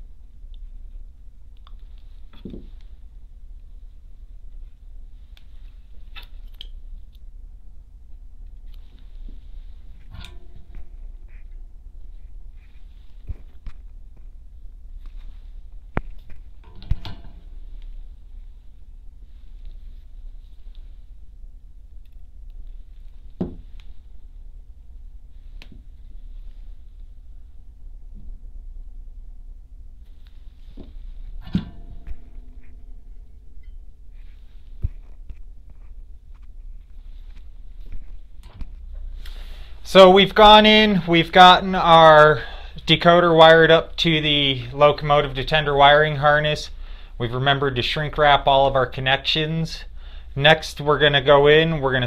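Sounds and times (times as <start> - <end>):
low steady hum: 0.0 - 52.0
soft rustles and taps: 8.5 - 14.4, 30.0 - 39.3.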